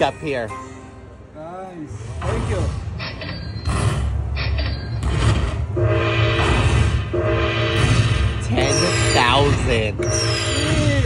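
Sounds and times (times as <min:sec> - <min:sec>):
slot machine tally sounds: 0:08.6 - 0:11.0.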